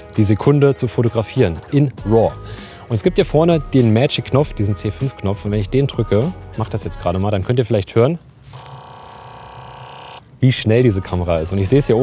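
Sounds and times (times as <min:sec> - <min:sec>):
camera shutter burst buzz: 0:08.5 - 0:10.2.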